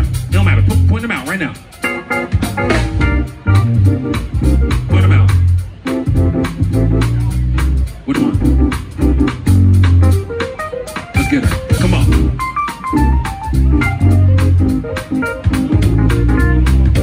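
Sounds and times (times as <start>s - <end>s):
electric bass guitar notes: 0.0s - 17.0s
live band playing: 0.0s - 17.0s.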